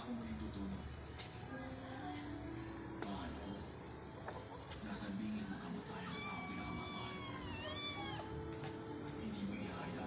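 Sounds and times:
kitten meowing: 6.0 - 8.3.

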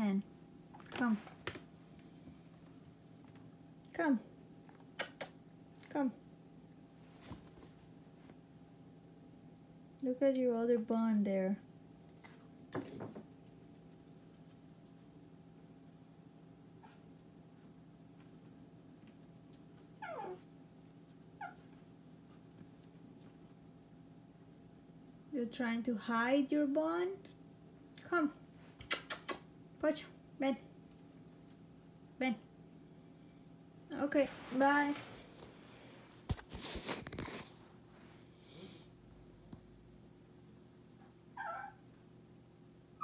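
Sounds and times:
small dog vocalizing: 20.0 - 20.4, 41.4 - 41.8.

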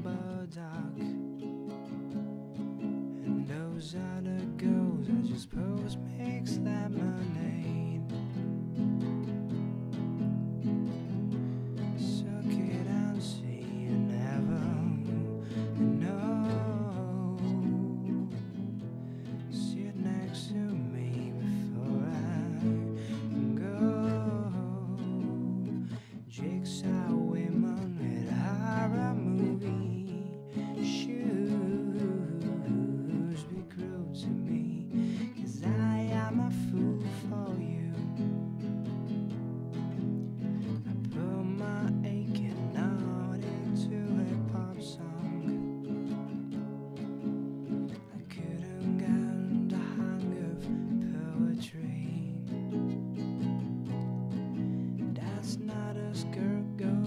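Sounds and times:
man singing: 0.0 - 1.3, 3.1 - 8.4, 11.6 - 38.7, 40.7 - 46.4, 47.9 - 57.0
acoustic guitar strumming: 0.0 - 57.0.

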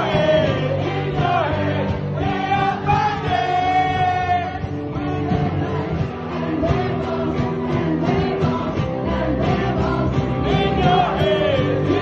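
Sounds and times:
live music accompaniment: 0.0 - 12.0
person singing: 0.0 - 12.0.

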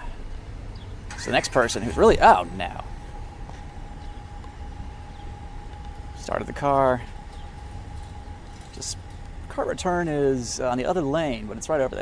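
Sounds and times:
car engine idling: 0.0 - 12.0
faint high whine: 0.0 - 12.0.

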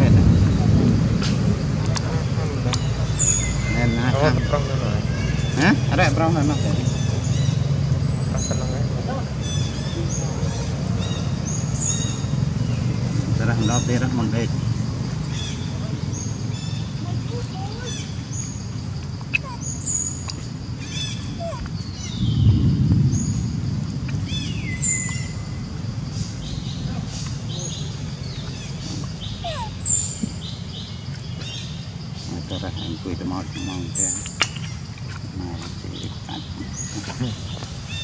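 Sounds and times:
birds chirping and whistling: 0.0 - 38.0
low rumbling background noise: 0.0 - 38.0
monkeys calling: 1.9 - 22.3, 26.2 - 38.0.

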